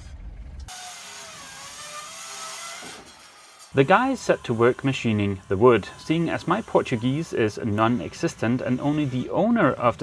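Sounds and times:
circular saw cutting wood: 0.7s - 10.0s.

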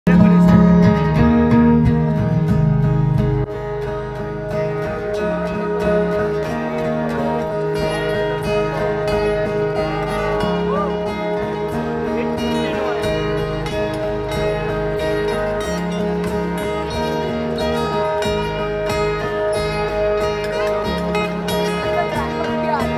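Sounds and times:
audience voices: 0.1s - 22.9s
live acoustic guitar music: 0.1s - 22.9s.

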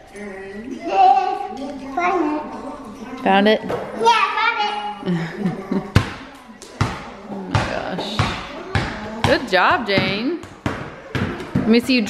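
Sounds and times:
basketball bouncing on hardwood: 6.8s - 12.0s.

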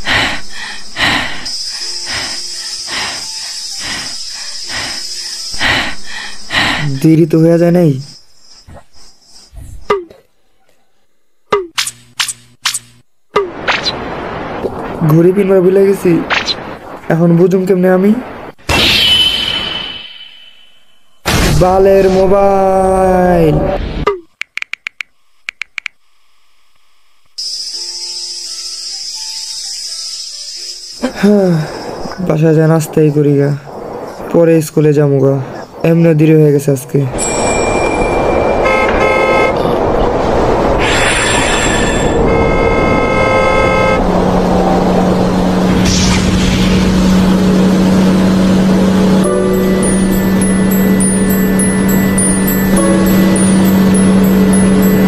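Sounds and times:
high insect chorus: 0.0s - 10.1s, 27.4s - 43.0s
steady engine hum: 0.0s - 10.2s, 37.2s - 55.0s
phone alarm beeping: 37.2s - 39.6s, 49.3s - 55.0s
cartoon van horn honking: 38.2s - 39.8s, 41.9s - 44.4s.

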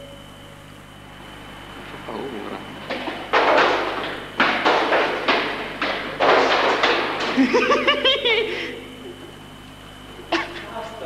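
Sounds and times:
echoing thuds on hard floor: 2.8s - 7.4s.

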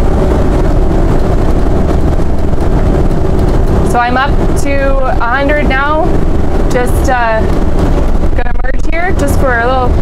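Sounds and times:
motorhome engine and road noise: 0.0s - 10.0s.

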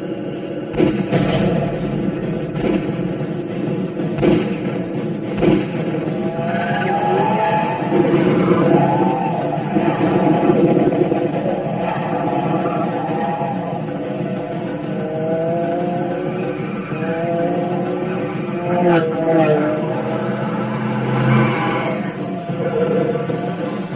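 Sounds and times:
car engine revving: 0.0s - 23.9s
sharp bang: 0.7s - 6.5s.

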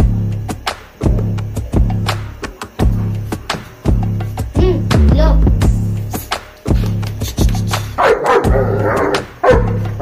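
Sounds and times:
background music with steady beat: 0.0s - 10.0s
dog barking: 8.0s - 10.0s.

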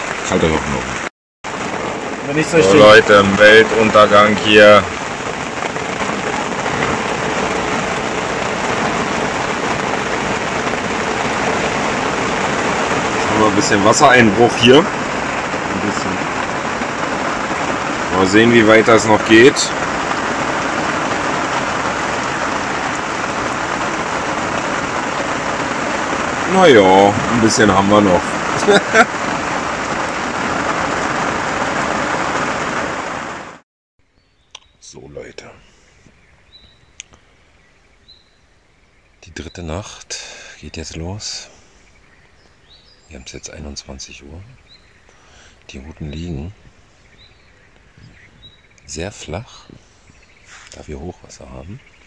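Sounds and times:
heavy rain on grass: 0.0s - 33.6s, 34.6s - 52.0s.

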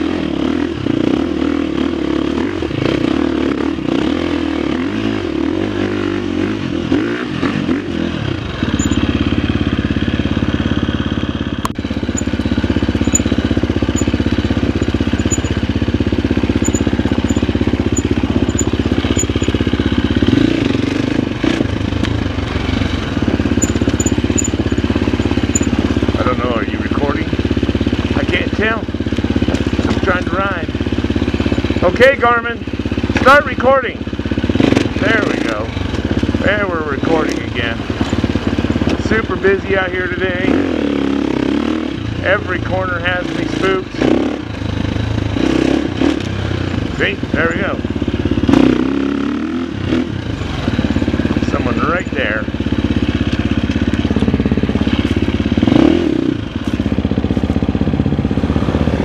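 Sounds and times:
dirt bike engine running: 0.0s - 59.0s.

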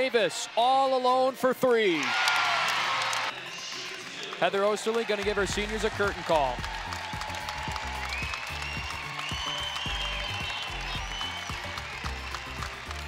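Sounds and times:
crowd applauding: 2.0s - 13.0s
music with a steady beat: 6.5s - 13.0s.

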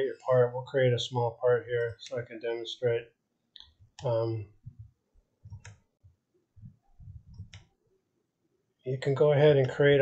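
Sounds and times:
faint low noises: 0.0s - 10.0s
computer mouse clicks: 3.6s - 5.9s, 6.6s - 7.8s.

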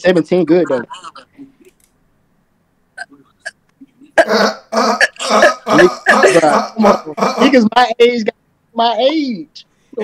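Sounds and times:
person laughing in short bursts: 4.0s - 7.5s.

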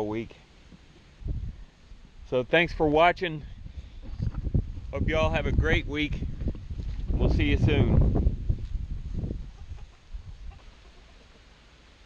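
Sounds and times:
chickens clucking: 9.5s - 11.6s.

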